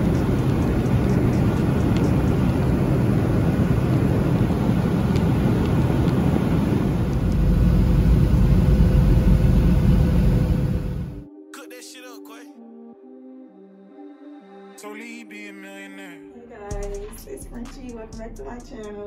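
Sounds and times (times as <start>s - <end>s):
jet airliner cabin rumble: 0.0s - 11.2s.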